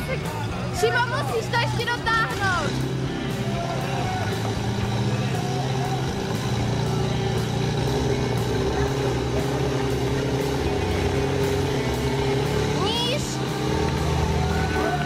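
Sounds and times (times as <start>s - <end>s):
voices: 0.0s - 15.0s.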